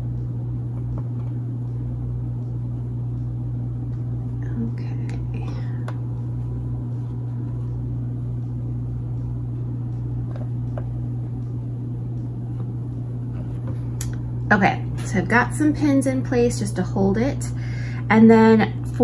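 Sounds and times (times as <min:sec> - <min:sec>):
steady electrical hum: 0:00.0 - 0:19.0
woman speaking: 0:04.4 - 0:05.9, 0:14.4 - 0:19.0.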